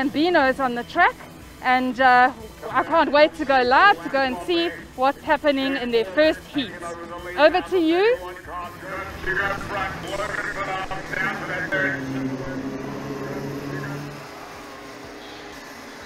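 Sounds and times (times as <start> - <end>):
indistinct voices: 0.0 - 16.0
kart engines droning: 0.0 - 16.0.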